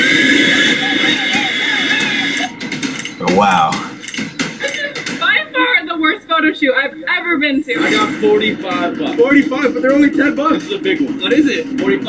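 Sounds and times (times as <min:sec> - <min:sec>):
faint voice: 0:03.2 - 0:03.9.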